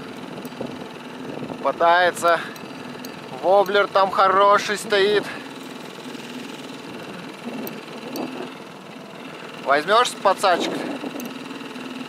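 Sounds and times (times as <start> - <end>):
outboard motor humming: 0.0 - 12.0.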